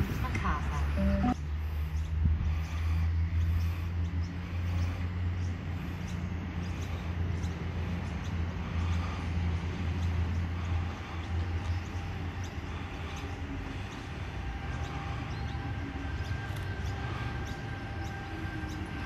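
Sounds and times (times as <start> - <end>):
electric train humming: 0.0 - 19.0.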